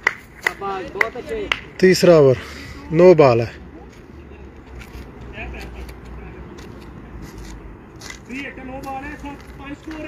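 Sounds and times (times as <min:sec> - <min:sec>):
man speaking loudly: 0:00.4 - 0:03.7.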